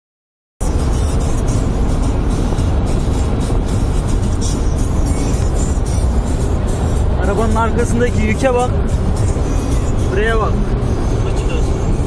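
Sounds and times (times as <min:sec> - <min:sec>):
engine drone: 0:00.6 - 0:12.0
music: 0:00.6 - 0:12.0
road rumble: 0:00.6 - 0:12.0
wind noise in car cabin: 0:00.6 - 0:12.0.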